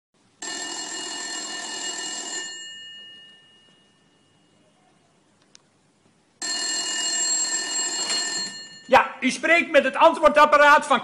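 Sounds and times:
telephone bell ringing: 0.4s - 4.6s, 6.4s - 9.2s.

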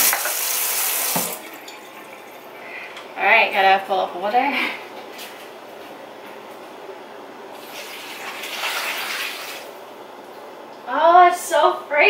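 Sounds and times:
water pouring into a pot: 0.0s - 2.5s, 7.6s - 9.7s.

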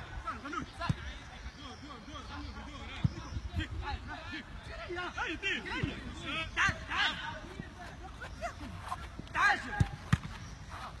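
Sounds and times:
football being kicked: 9.6s - 10.5s.

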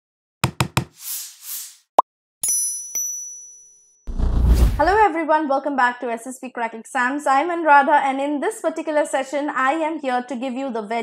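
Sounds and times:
quick knocks: 0.4s - 1.0s.

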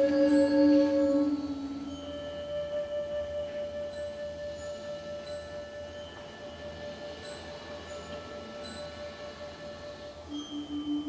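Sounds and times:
band music with held notes: 0.0s - 11.0s.

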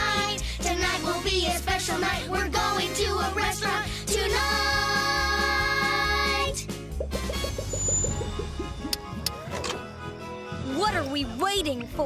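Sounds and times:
rising cartoon blips: 6.9s - 9.6s.

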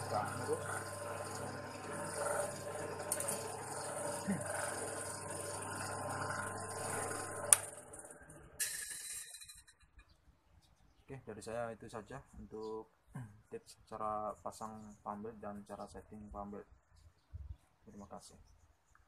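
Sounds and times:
electric motor running: 0.0s - 8.9s.

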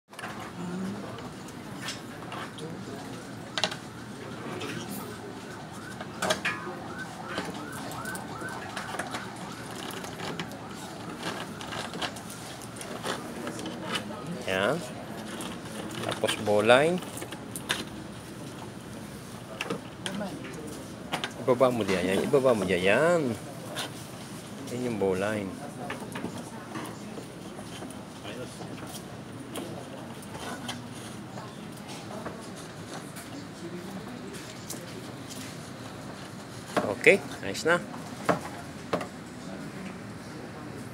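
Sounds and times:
electronic siren yelping: 3.3s - 13.4s
rope rustling and clicking: 7.3s - 14.1s.

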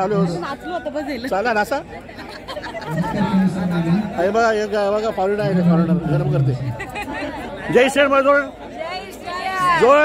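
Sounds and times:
party chatter: 0.0s - 10.0s.

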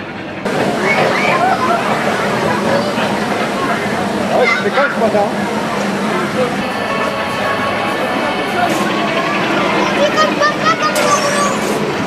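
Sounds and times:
steady rushing background noise: 0.0s - 12.0s
young children calling and chattering: 0.5s - 12.0s.

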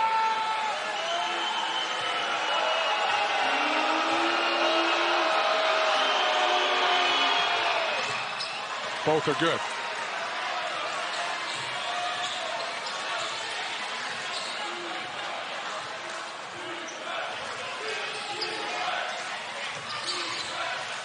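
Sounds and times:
crowd murmur: 2.2s - 21.0s.

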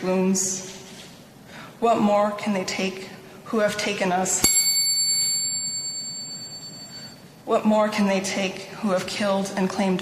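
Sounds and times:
small metal bell ringing: 4.4s - 7.2s.

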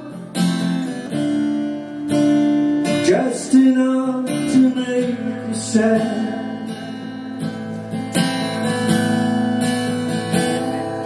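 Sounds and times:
guitar chords strummed: 0.0s - 11.0s.

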